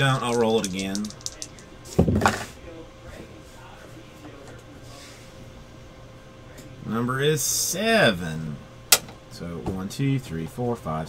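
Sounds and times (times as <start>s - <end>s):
dice rattling in hand: 0.0s - 1.7s
dice landing on desk: 0.1s - 2.4s.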